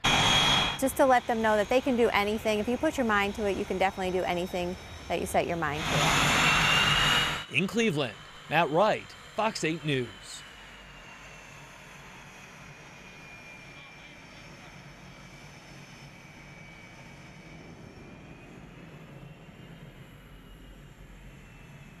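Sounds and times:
jet engines whining: 0:00.0 - 0:22.0.

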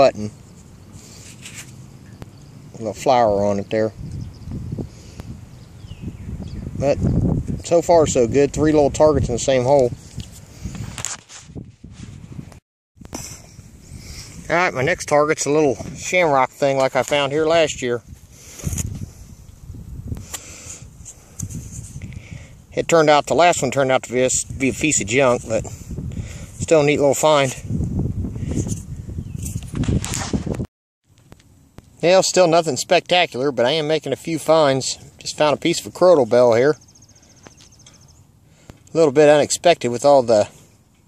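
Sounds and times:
wind rumble on microphone: 0:03.2 - 0:30.7
camera handling noise: 0:10.2 - 0:11.6.

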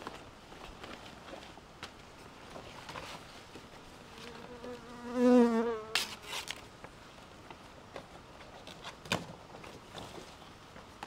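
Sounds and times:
insect buzzing: 0:04.0 - 0:06.3.

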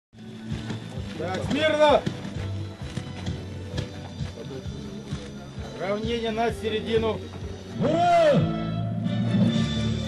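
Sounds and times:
music with sustained low tones: 0:00.2 - 0:10.0.

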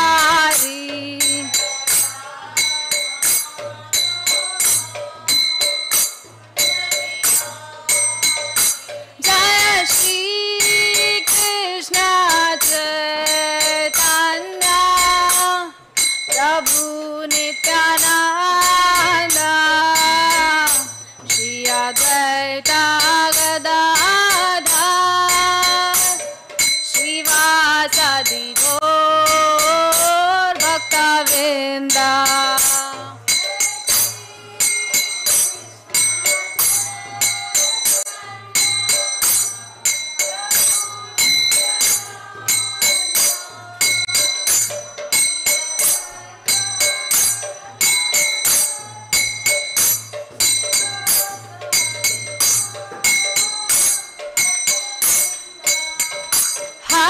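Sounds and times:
small hand cymbals striking: 0:00.0 - 0:57.0
woman singing a chant: 0:00.0 - 0:57.0.

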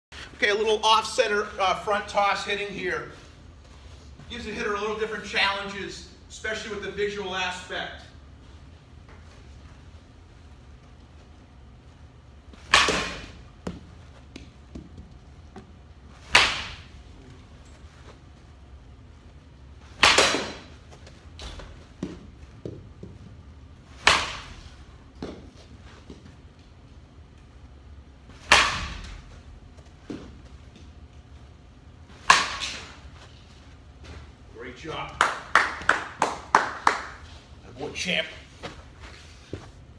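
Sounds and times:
baseball bat hitting ball: 0:12.6 - 0:13.9, 0:16.2 - 0:17.0, 0:19.9 - 0:20.7, 0:23.9 - 0:25.4, 0:28.4 - 0:29.2, 0:32.2 - 0:32.9.

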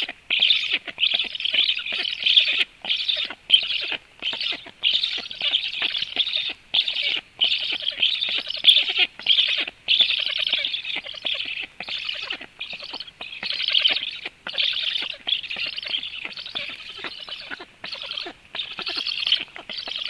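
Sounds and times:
stork chicks begging calls: 0:00.0 - 0:20.0.

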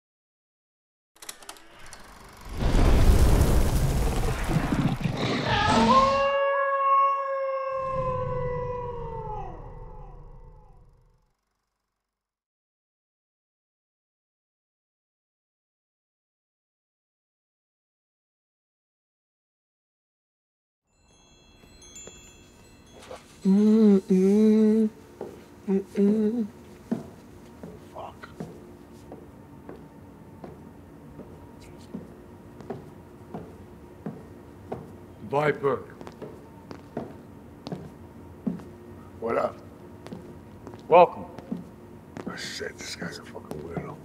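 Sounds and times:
wolf howl: 0:05.2 - 0:11.1
high ringing chime tones: 0:20.9 - 0:24.2.

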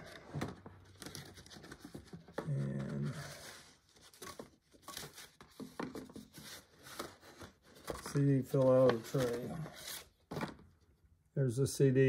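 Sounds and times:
box and folder handling noises: 0:00.0 - 0:10.8
man murmuring: 0:02.4 - 0:03.4.

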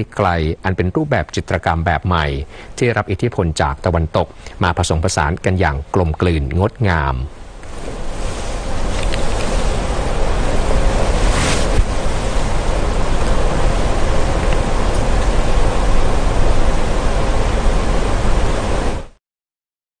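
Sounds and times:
loud hiss with low rumble: 0:00.0 - 0:19.2.

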